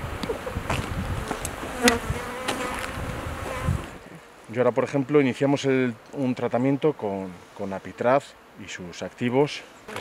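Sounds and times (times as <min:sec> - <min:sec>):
honeybees buzzing: 0:00.1 - 0:04.2, 0:07.5 - 0:10.0.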